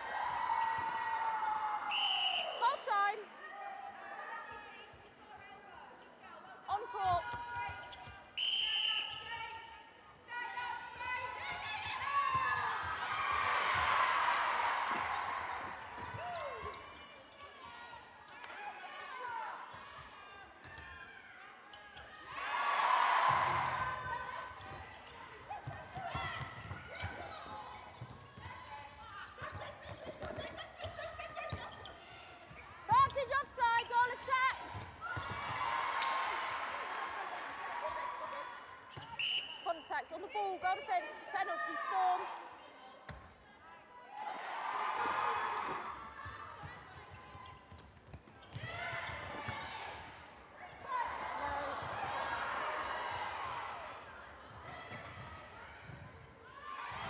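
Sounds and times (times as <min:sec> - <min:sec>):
crowd cheering: 0:00.0 - 0:03.4, 0:11.5 - 0:16.8, 0:22.3 - 0:24.6, 0:32.9 - 0:39.8, 0:44.1 - 0:46.6, 0:50.8 - 0:55.4
whistle blowing: 0:01.9 - 0:02.8, 0:08.4 - 0:09.4, 0:39.1 - 0:39.9.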